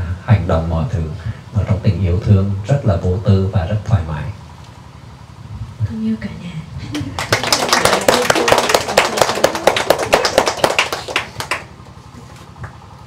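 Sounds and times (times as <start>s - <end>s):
people laughing: 6.8s - 11.2s
small group applauding: 6.9s - 11.9s.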